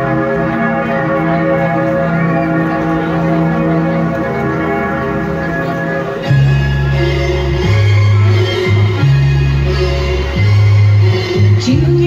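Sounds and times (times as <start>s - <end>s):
peal of bells: 0.0s - 12.0s.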